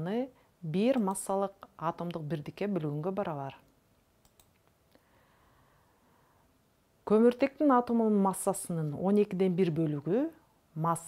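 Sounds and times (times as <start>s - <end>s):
soft clicks: 3.6s - 5.0s.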